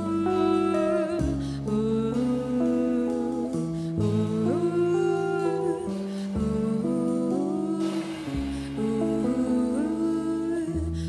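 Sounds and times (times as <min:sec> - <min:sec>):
sustained low notes: 0:00.0 - 0:11.0
woman singing wordlessly: 0:00.0 - 0:11.0.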